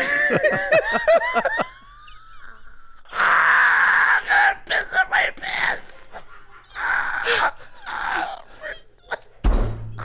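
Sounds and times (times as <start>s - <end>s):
men laughing: 0.0s - 2.8s.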